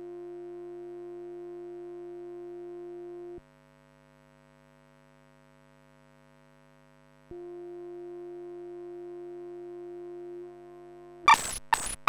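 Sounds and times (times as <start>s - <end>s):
loud sine-like synthesizer tone: 0.0s - 3.4s, 7.3s - 12.0s.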